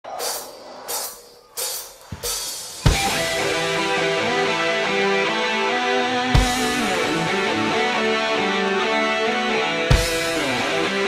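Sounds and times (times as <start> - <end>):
heavy metal band playing: 2.5 - 11.0.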